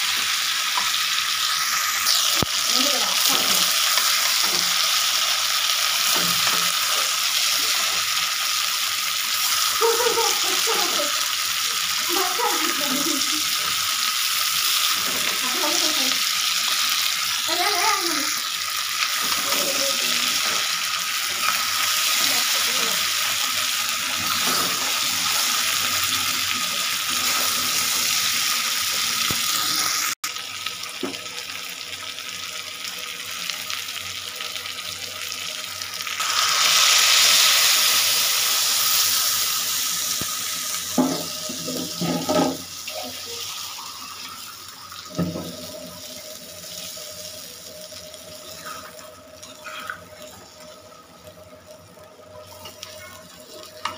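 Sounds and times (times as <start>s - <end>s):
food sizzling in a pan: 0.0s - 53.9s.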